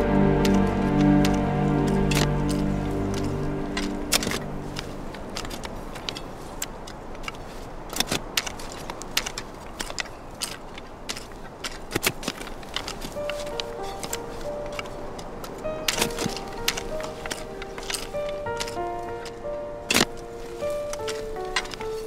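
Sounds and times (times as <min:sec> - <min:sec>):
music of slow held notes: 0:00.0 - 0:06.6, 0:12.9 - 0:22.0
hand forks knocking into soil: 0:15.8 - 0:22.0.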